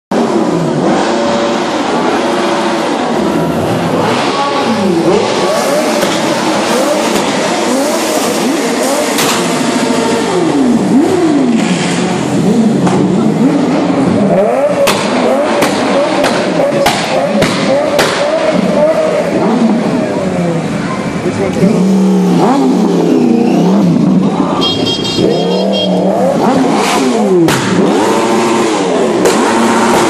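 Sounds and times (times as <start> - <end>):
car engines revving: 0.1 - 30.0
street crowd hubbub: 0.1 - 30.0.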